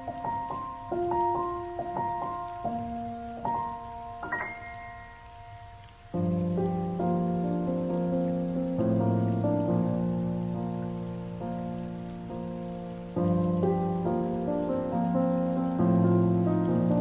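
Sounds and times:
slow solo piano ballad: 0.0s - 17.0s.

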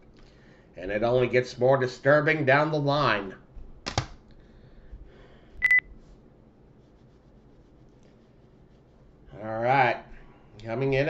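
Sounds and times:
high electronic beep: 5.6s - 5.8s.

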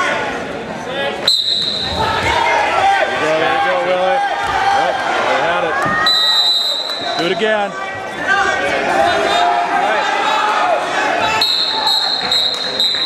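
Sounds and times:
referee whistle blast: 1.3s - 2.0s, 6.0s - 7.2s, 11.4s - 13.0s.

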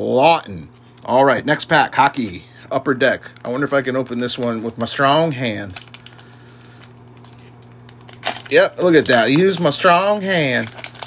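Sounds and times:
steady low hum: 0.0s - 11.0s
foil pack rustling and squishing: 2.1s - 11.0s.

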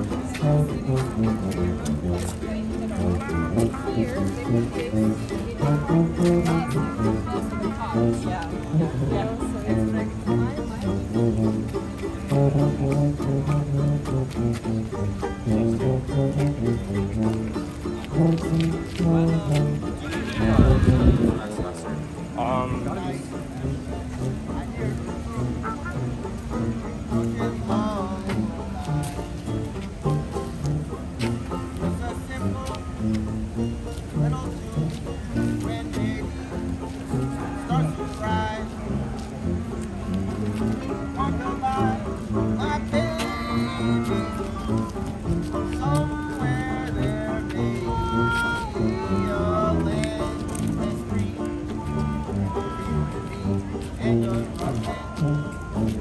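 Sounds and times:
light rhythmic ticks: 0.0s - 20.5s, 21.7s - 56.0s
banjo: 0.0s - 20.7s
jazz street band playing: 0.0s - 56.0s
tuba bass notes: 0.0s - 56.0s.

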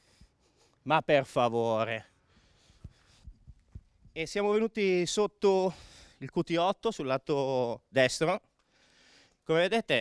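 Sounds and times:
faint low microphone thumps: 2.7s - 4.3s.

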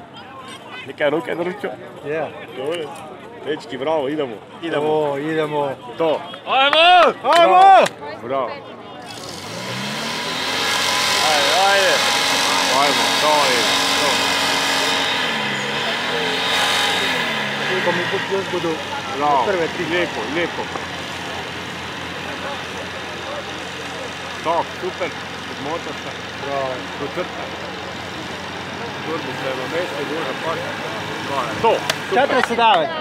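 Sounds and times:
petrol engine running: 9.0s - 33.0s.

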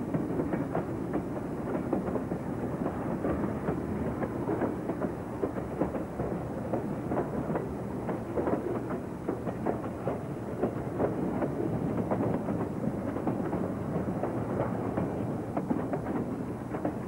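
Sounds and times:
wheels clicking over rail joints: 0.0s - 17.0s.

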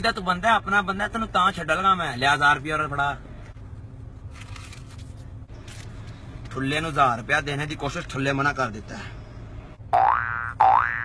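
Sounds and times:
cartoon boing sound effect: 9.9s - 11.0s.

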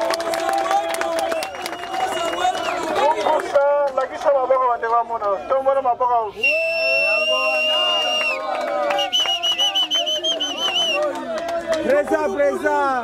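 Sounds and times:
whistle blast: 6.4s - 11.0s.

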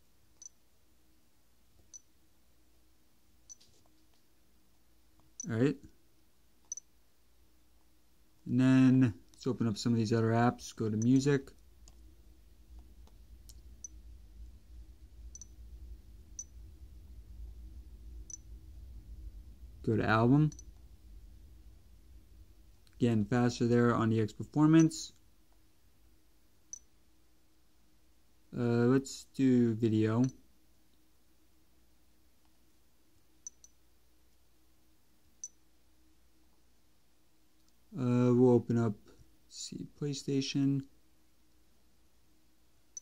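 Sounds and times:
low room hum: 0.0s - 43.0s.

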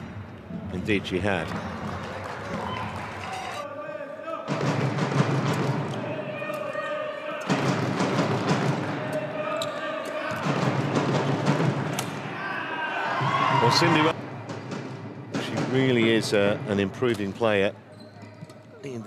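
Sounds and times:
loud crowd voices: 0.0s - 19.0s.

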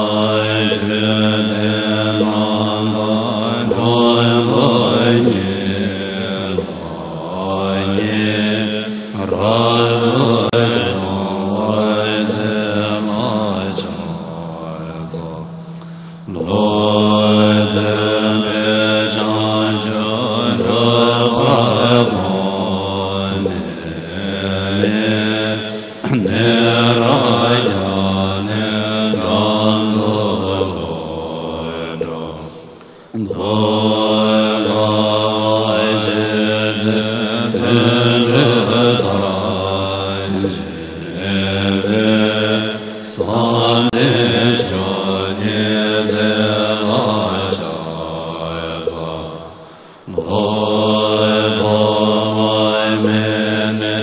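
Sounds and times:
steady low drone: 0.0s - 54.0s.

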